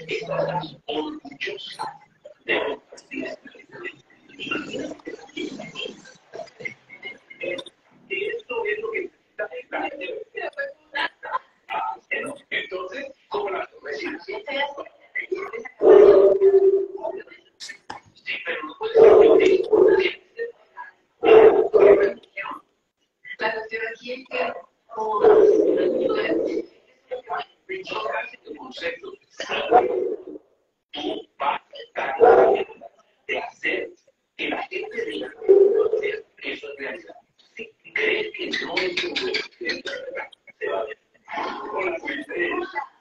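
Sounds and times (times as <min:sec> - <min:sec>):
man making speech-like sounds: 0:00.0 - 0:20.5, 0:21.2 - 0:22.3, 0:24.3 - 0:30.1, 0:31.0 - 0:42.9
person speaking: 0:00.0 - 0:20.6, 0:21.2 - 0:22.6, 0:23.3 - 0:30.4, 0:31.0 - 0:43.0.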